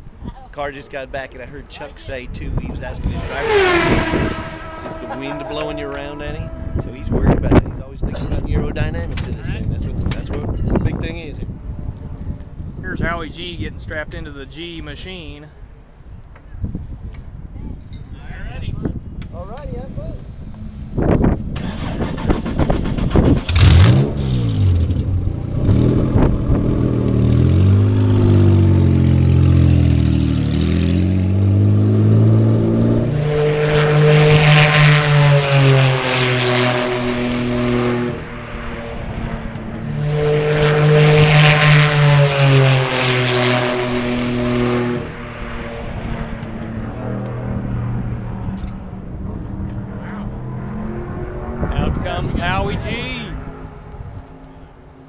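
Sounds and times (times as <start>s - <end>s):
racing engine revving: 2.6s - 7.5s, 20.4s - 54.3s
race car passing at speed: 2.6s - 7.6s, 23.6s - 55.0s.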